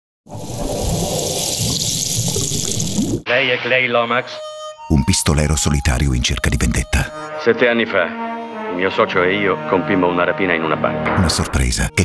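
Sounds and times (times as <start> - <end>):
water-like rushing sound effect: 0.3 - 3.3.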